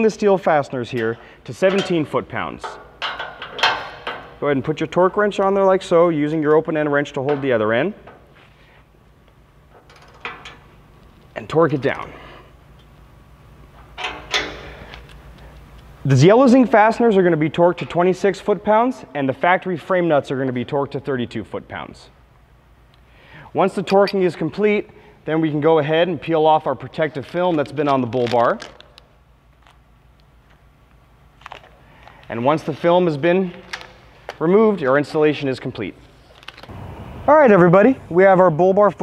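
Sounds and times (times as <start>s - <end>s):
low shop hum: 0.0s - 39.0s
plastic film peeling crackle: 27.9s - 29.8s, 31.4s - 32.2s, 36.2s - 36.7s.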